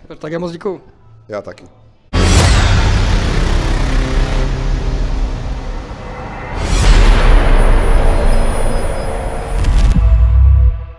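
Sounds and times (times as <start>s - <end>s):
rumbling whoosh and hit: 2.2s - 10.9s.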